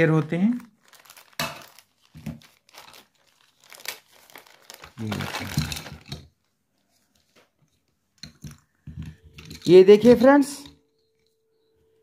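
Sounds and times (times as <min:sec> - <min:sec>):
plastic bag crinkling: 0:00.0 - 0:06.5.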